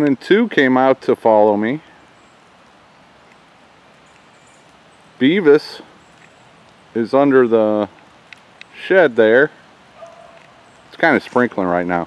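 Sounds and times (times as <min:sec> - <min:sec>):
light rain hissing: 0:00.0 - 0:12.0
soft ticks: 0:02.6 - 0:04.8, 0:06.0 - 0:06.8, 0:07.9 - 0:08.8.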